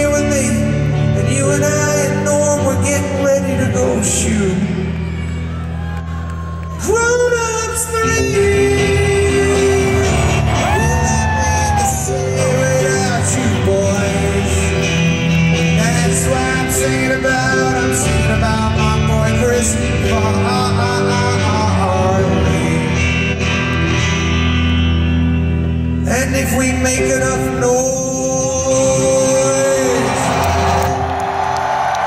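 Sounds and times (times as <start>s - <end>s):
live band music: 0.0s - 5.1s, 7.3s - 31.4s.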